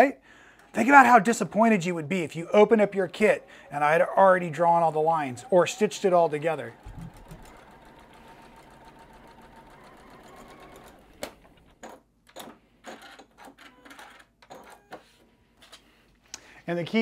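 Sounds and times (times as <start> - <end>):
sewing machine stitching: 0.8 - 12.0.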